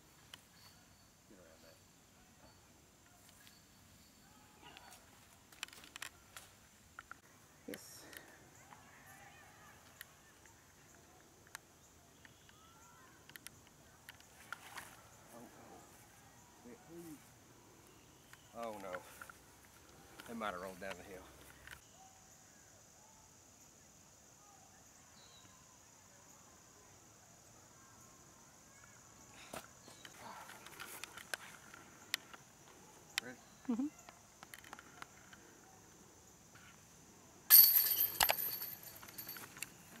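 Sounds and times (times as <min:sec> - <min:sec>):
disc crashing into metal chains: 0:37.5 - 0:39.6.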